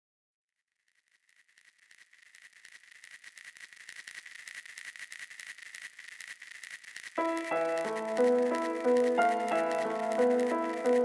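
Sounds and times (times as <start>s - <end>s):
irregular crackling clicks: 0.8s - 11.0s
steady high whine: 1.4s - 11.0s.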